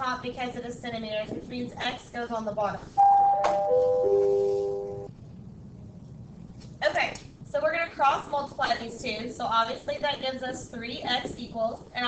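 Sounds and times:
descending electronic chime: 3.0 - 5.1.

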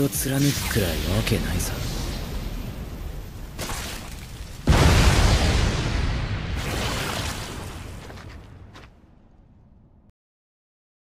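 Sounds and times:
heavy blast: 0.4 - 8.2.

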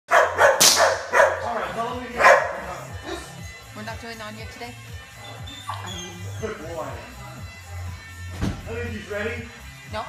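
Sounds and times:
dog barking: 0.1 - 1.6, 2.2 - 2.7.

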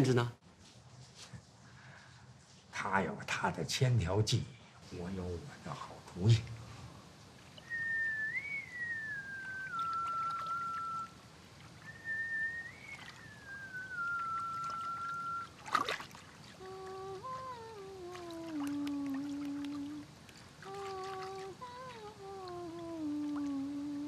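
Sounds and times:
woman whistling a slow tune: 7.6 - 11.2, 11.8 - 15.6
woman humming a tune: 16.5 - 24.0.

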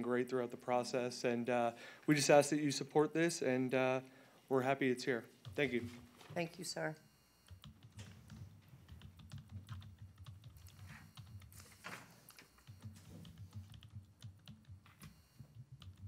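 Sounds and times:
computer keyboard typing: 5.4 - 6.0, 7.5 - 16.0.

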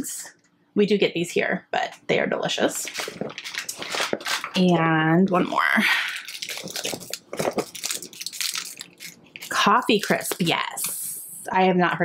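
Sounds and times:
wrappers crinkling: 2.8 - 11.1.

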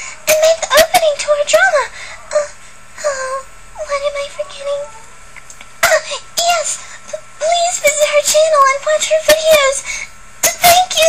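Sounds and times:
high-pitched woman speaking: 0.2 - 5.1, 5.8 - 11.0.

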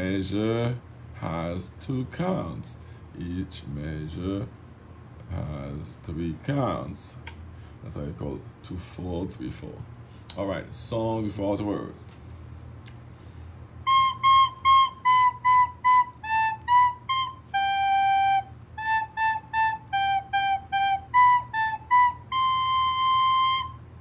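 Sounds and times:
soprano recorder melody: 13.8 - 24.0.

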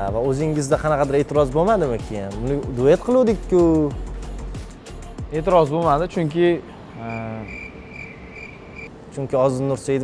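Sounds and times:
cricket chirping: 6.6 - 9.1.

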